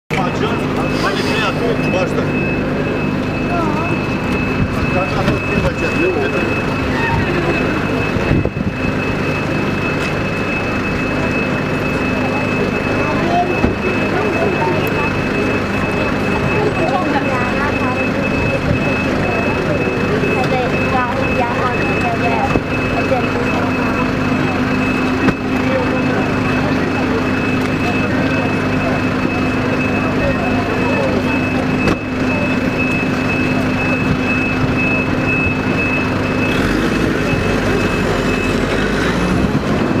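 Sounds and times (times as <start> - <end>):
constant high-pitched tone: 0.1 - 38.8
engine drone: 0.1 - 40.0
people talking: 0.1 - 40.0.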